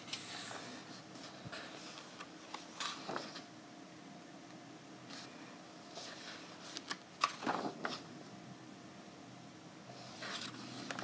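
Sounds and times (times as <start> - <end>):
paper page rustling: 5.9 - 8.0, 10.1 - 11.0.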